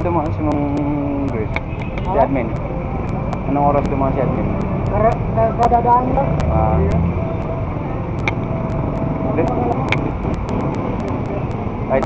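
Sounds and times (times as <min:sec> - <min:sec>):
passing street traffic rumble: 0:00.0 - 0:12.0.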